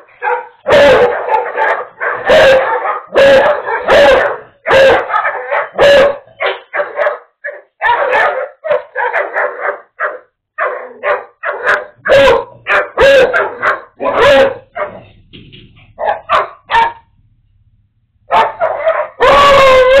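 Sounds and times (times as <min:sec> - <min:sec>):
dog barking: 0:00.0 - 0:15.1, 0:15.9 - 0:17.2, 0:18.3 - 0:20.0.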